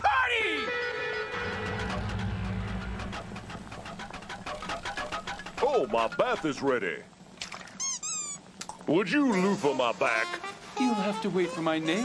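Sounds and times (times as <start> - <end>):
rubber duck toy squeaking: 7.8 - 8.4.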